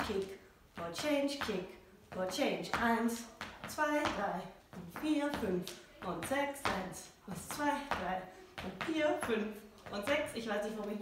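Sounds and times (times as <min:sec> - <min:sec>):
woman calling out dance count: 0:00.0 - 0:11.0.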